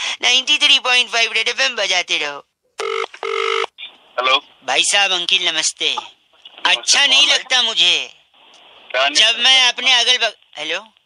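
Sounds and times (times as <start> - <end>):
telephone ringback tone: 2.8 - 3.7.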